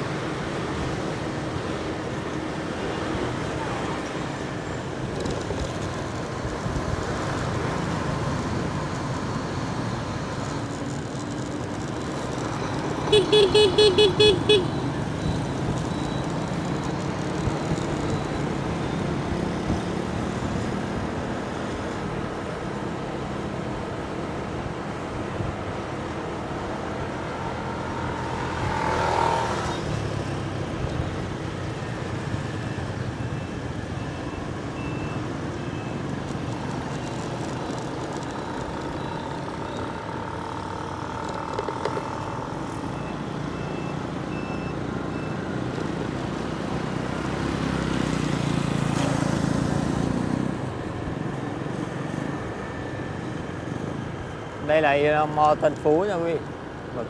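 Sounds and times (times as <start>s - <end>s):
motorbike engine and road noise: 0.0s - 57.0s.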